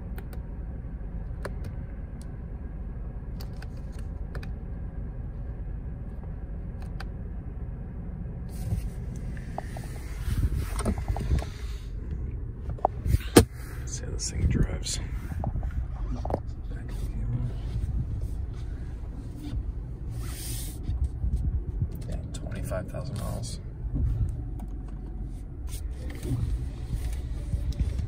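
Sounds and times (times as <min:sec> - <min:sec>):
car engine idling: 0:00.0 - 0:28.0.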